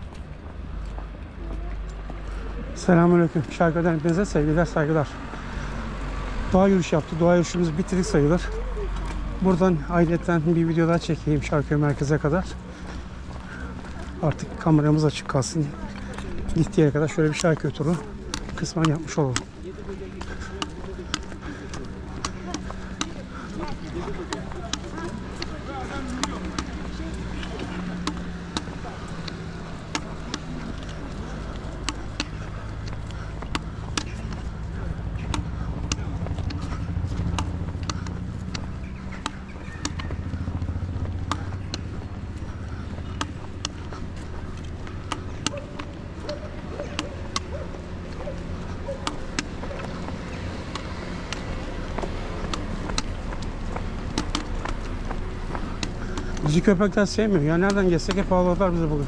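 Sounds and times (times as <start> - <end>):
footsteps and trekking pole taps: 0.0 - 5.7, 6.6 - 59.0
low traffic rumble: 0.0 - 59.0.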